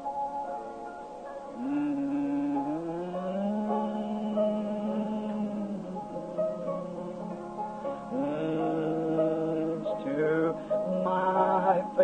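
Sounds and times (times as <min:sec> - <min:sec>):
congregation singing a hymn: 0:01.6 - 0:12.0.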